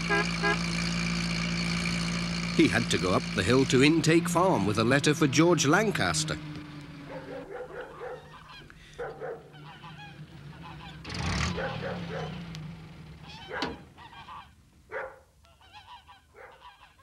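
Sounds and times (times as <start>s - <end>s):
geese honking: 0.0s - 0.7s, 7.0s - 12.3s, 13.2s - 17.0s.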